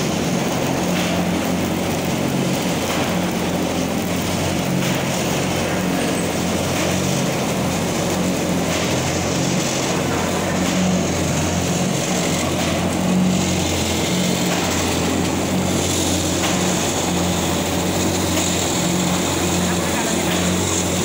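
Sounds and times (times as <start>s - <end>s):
paper cutting machine humming: 0.0s - 21.0s.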